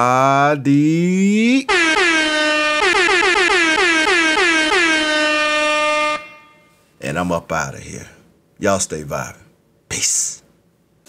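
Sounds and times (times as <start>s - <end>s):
air horn blasts: 1.7s - 6.8s.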